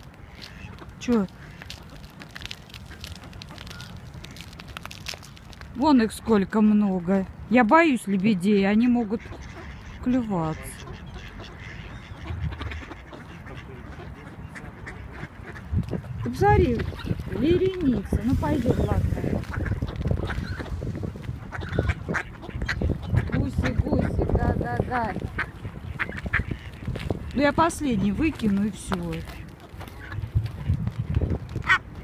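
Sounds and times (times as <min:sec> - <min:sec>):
ducks quacking: 0:00.2 - 0:04.6, 0:08.4 - 0:30.8, 0:31.6 - 0:32.0.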